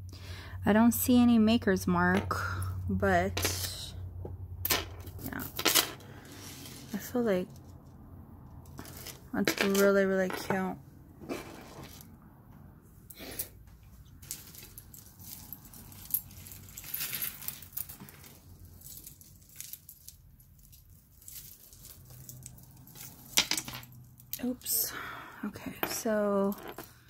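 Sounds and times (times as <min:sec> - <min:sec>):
metal chain jingling: 0:14.2 - 0:24.8
chain set down on wooden table: 0:23.0 - 0:23.9, 0:25.8 - 0:26.9.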